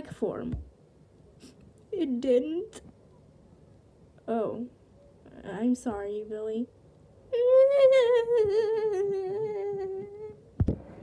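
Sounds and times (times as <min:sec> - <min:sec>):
person humming a high note: 0:07.4 - 0:10.4.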